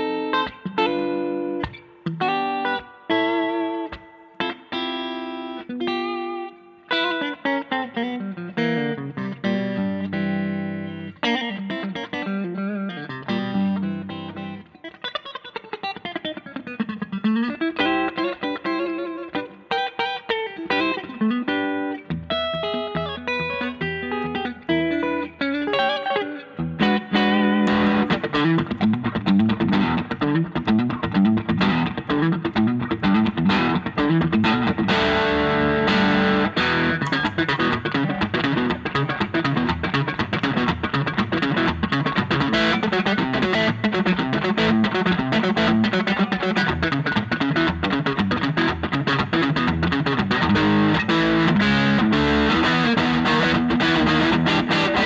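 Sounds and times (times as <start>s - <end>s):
electric guitar through an amp: 0.0s - 55.0s.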